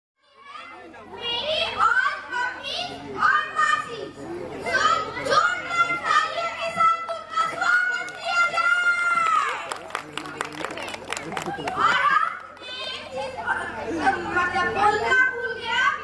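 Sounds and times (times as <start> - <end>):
boy speaking over loudspeakers: 0.3 - 9.6, 11.8 - 16.0.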